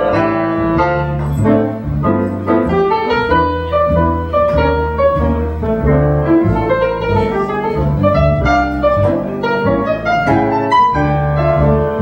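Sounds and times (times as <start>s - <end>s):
double bass: 0.0s - 12.0s
jazz piano: 0.0s - 12.0s.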